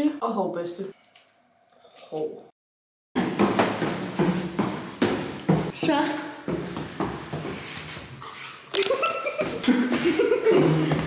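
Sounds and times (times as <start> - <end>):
footsteps down stairwell stairs: 3.2 - 11.0
person speaking: 5.7 - 6.5.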